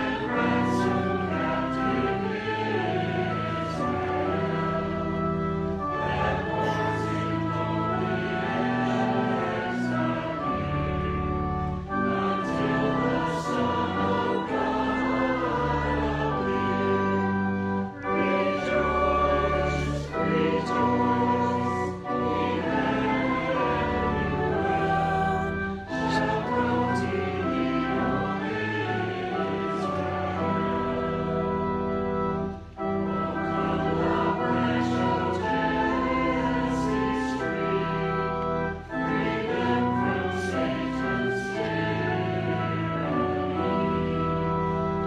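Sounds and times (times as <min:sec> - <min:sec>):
choir singing a hymn: 0:00.0 - 0:45.0
sustained accompaniment: 0:00.0 - 0:45.0.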